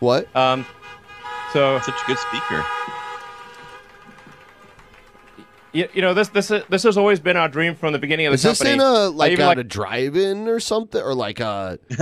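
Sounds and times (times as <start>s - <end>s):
car horns honking together: 0.4s - 7.5s.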